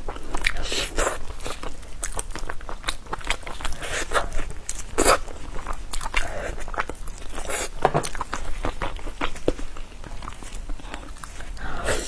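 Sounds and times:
biting and chewing meat: 0.0 - 12.0.

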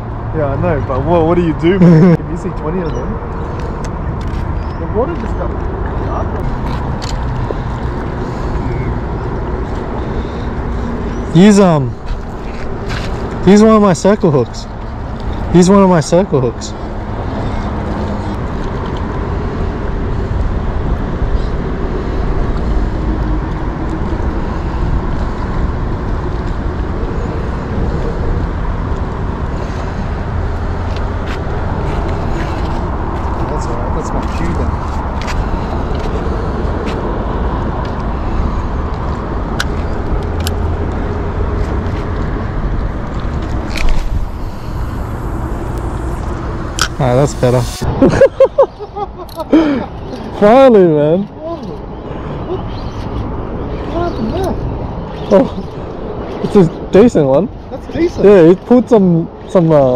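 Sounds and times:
road traffic rumble: 0.0 - 59.9.

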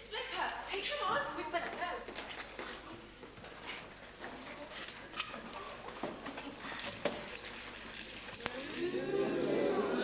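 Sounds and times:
audience murmuring and rustling: 0.0 - 10.0.

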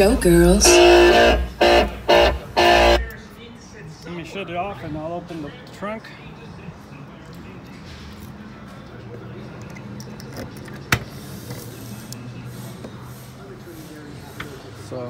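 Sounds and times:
low steady hum: 0.0 - 3.0.

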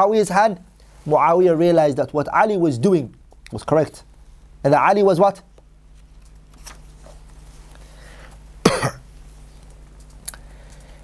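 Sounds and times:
man coughing: 8.6 - 9.1.

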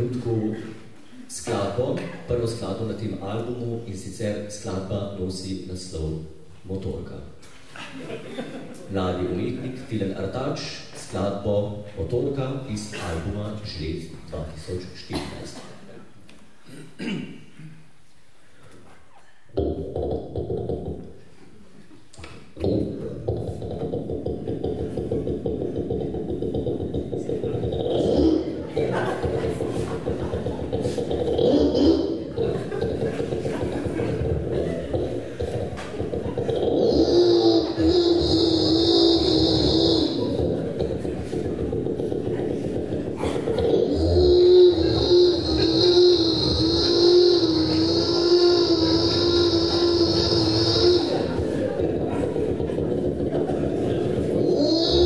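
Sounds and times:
beatboxed chainsaw imitation: 19.5 - 21.2, 22.2 - 55.0.

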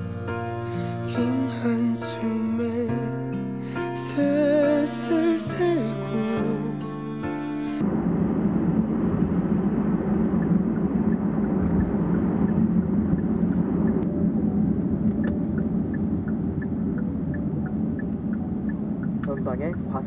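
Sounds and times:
road and engine noise in car: 7.8 - 20.0
turn signal ticking: 14.9 - 20.0.

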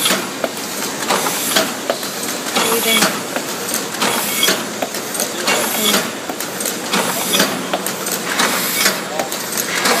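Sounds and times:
machine clicks and knocks: 0.0 - 10.0.

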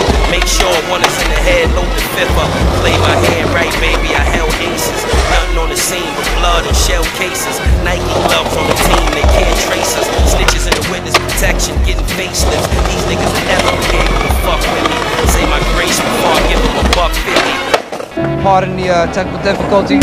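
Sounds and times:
skateboard clacks: 0.0 - 6.0, 8.0 - 18.1
skateboard wheels rolling on concrete: 0.0 - 18.4
hip-hop beat with heavy bass: 0.0 - 19.0.

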